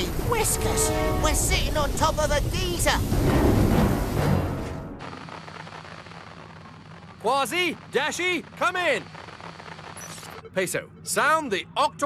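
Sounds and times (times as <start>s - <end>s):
loud rumbling rush: 0.0s - 4.5s
dramatic music: 0.0s - 5.1s.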